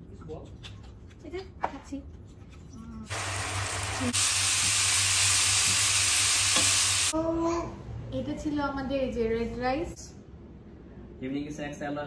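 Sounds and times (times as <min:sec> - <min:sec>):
rice sizzling in a frying pan: 0:03.1 - 0:07.1.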